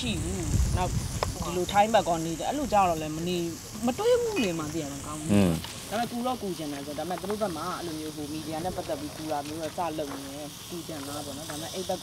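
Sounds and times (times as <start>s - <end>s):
conversation: 0.0s - 12.0s
meat sizzling on grill: 0.0s - 12.0s.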